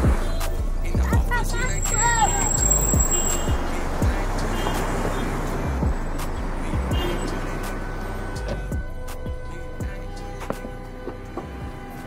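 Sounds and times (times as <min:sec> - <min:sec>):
deep bass hits: 0:05.7 - 0:07.0.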